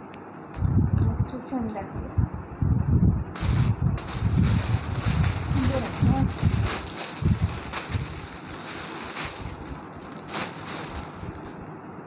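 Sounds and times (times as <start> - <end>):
rumbling and rustling noise: 1.9 - 12.0.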